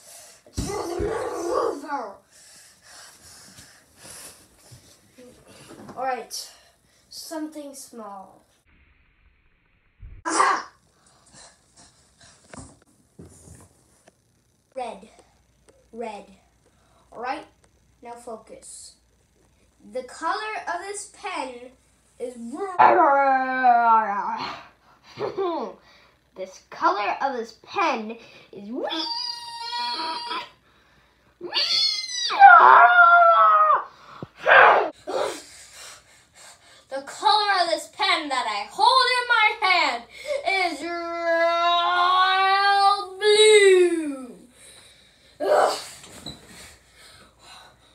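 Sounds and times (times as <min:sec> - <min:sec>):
boy breathy huffs: 0:02.2 - 0:05.8, 0:35.0 - 0:36.9
boy's strained wailing cry: 0:28.9 - 0:30.6.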